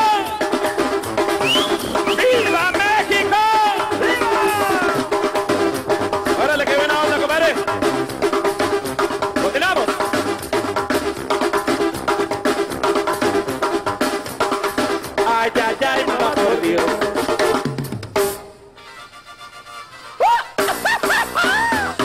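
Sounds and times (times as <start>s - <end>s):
drum kit steady beat: 0.0s - 18.6s, 20.4s - 22.0s
sliding vocal shouts: 2.9s - 5.0s.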